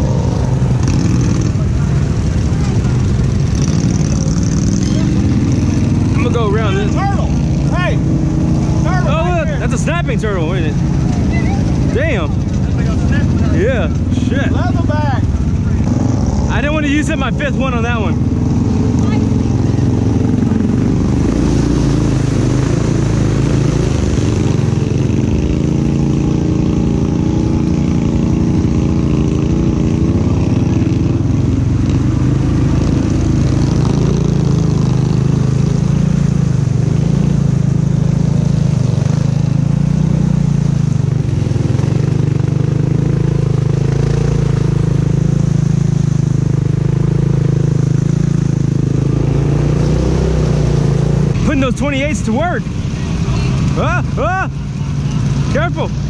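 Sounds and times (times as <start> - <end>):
atv engine running: 0.0 - 56.0
driving through mud and water: 0.0 - 56.0.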